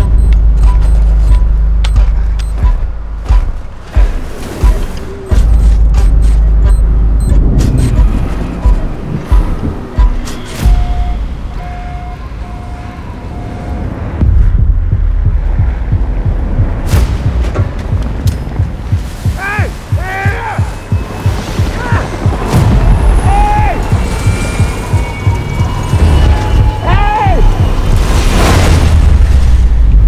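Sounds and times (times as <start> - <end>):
deep bass drone: 0.0 - 12.6, 13.8 - 19.2
booming hits: 14.2 - 20.0, 20.6 - 30.0
man shouting: 19.3 - 20.8, 21.7 - 22.1, 23.2 - 23.9, 26.8 - 27.6.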